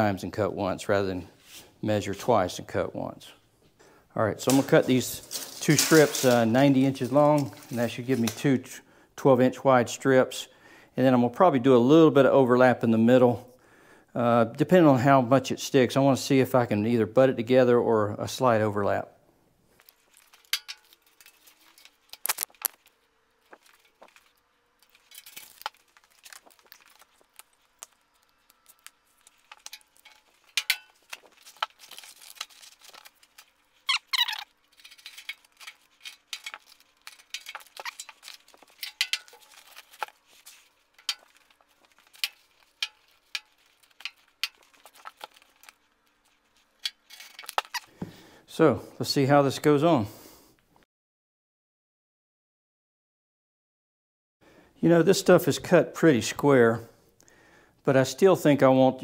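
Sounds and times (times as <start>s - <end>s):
small objects clinking: 4.4s - 8.5s, 19.7s - 48.1s
tape rustling and tapping: 19.7s - 48.2s
rising squeak: 33.9s - 34.6s.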